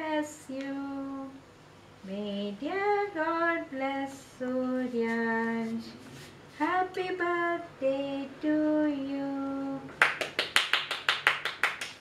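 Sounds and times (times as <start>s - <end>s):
hand clapping: 9.9s - 12.0s.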